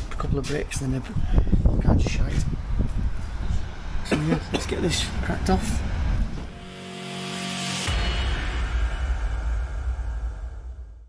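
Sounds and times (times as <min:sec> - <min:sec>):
rising whoosh: 0:05.0 - 0:11.0.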